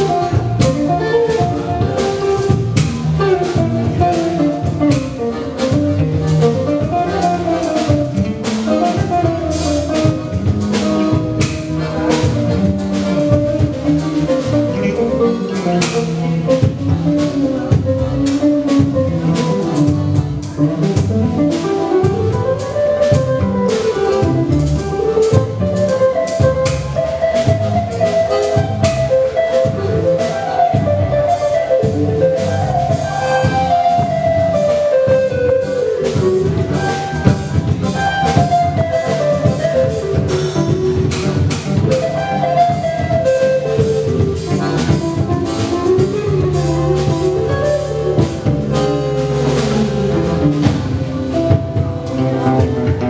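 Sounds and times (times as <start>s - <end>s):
accordion: 0.0s - 53.0s
drum and cymbal hits: 0.0s - 53.0s
electric bass: 0.0s - 53.0s
electric guitar: 0.0s - 53.0s.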